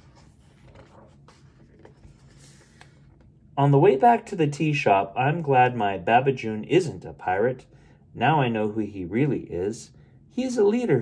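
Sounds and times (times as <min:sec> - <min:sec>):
paper pages rustling and turning: 0:00.0 - 0:03.3.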